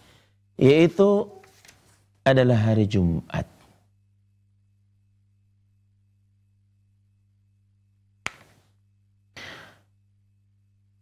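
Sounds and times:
soft intake of breath: 0:00.0 - 0:00.4, 0:09.4 - 0:09.9
book page turning: 0:01.4 - 0:02.0.

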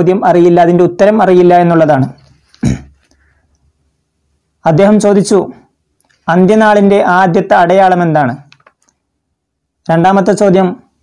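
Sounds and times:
man narrating: 0:00.0 - 0:02.2, 0:04.6 - 0:08.5, 0:09.9 - 0:10.9.

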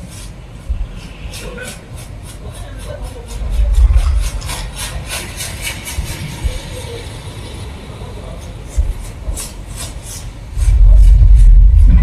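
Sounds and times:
deep bass swell: 0:10.6 - 0:12.0.

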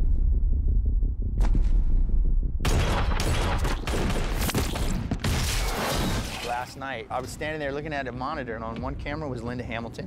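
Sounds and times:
deep steady rumble: 0:00.0 - 0:03.4.

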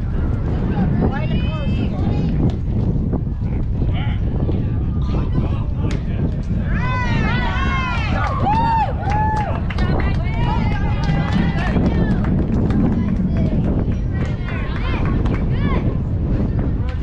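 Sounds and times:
wind rumble on microphone: 0:00.0 - 0:17.0
voices shouting and cheering: 0:00.2 - 0:02.5, 0:03.6 - 0:17.0.

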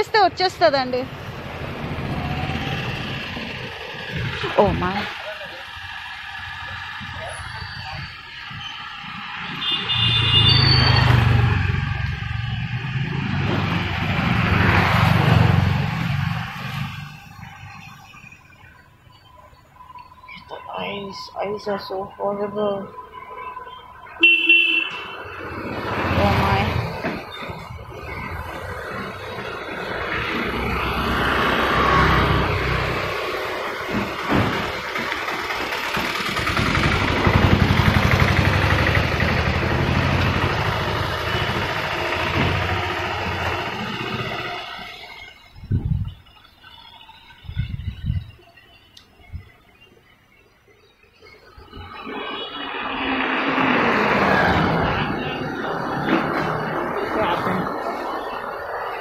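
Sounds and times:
road traffic passing: 0:00.0 - 0:59.0
vehicle horn toot: 0:09.6 - 0:11.1, 0:24.2 - 0:25.3.

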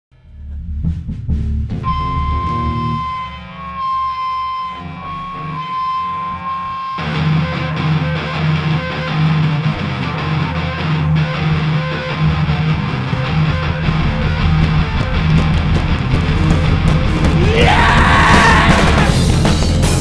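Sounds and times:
bass notes: 0:00.1 - 0:20.0
drums: 0:00.2 - 0:03.2, 0:11.6 - 0:20.0
held electric guitar note: 0:00.2 - 0:17.4
distorted electric guitars: 0:00.2 - 0:20.0.

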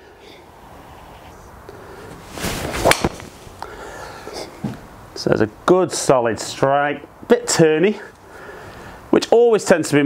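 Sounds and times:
golf swing whoosh: 0:02.0 - 0:03.6
golf club hitting ball: 0:02.7 - 0:03.2.

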